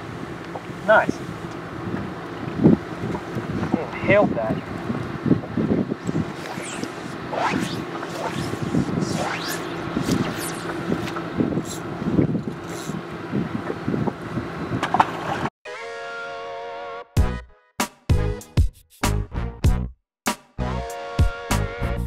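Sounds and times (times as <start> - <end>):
water: 0.0 - 15.4
wind: 0.0 - 15.5
music: 15.7 - 22.0.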